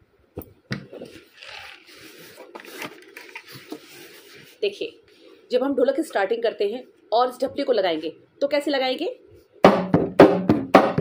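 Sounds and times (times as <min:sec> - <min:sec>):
drum shell scraping against cloth: 0:01.0 - 0:04.6.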